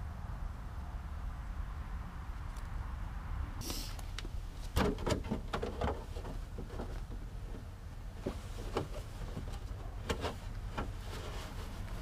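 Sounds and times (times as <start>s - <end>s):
handling rustle: 3.6s - 12.0s.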